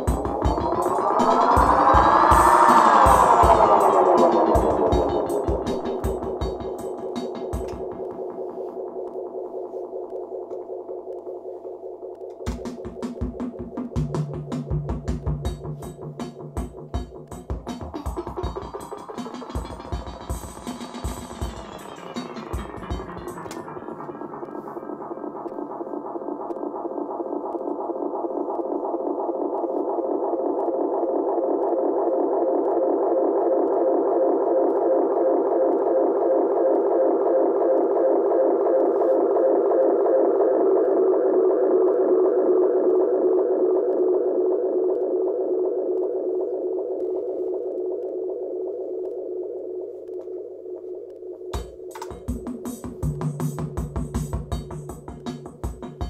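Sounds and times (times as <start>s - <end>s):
tape delay feedback drone: 0.0s - 56.0s.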